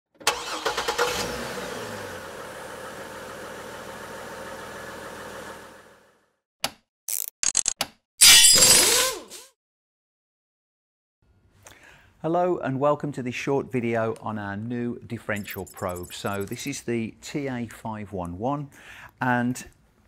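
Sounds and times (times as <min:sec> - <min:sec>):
engine starting and running: 0:00.1 - 0:06.3.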